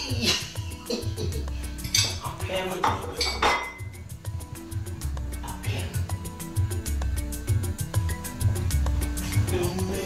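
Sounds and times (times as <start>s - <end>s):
plate and pot clattering: 1.8s - 2.2s, 2.8s - 4.0s.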